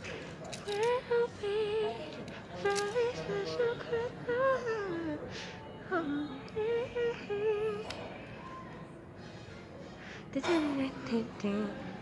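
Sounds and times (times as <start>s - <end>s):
woman humming: 5.9s - 8.0s.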